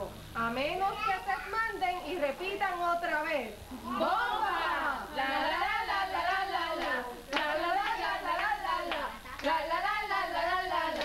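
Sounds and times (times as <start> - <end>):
women singing together: 3.9 - 11.0
hand claps: 6.8 - 9.6.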